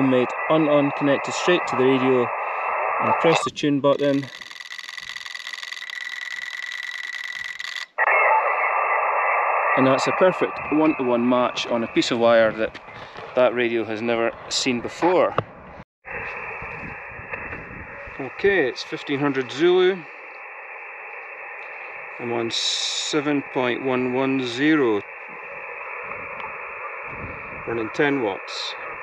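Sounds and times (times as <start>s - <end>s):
radio receiver band noise hiss: 0.0s - 15.4s, 16.1s - 29.0s
steady high tone with hiss: 16.2s - 29.0s.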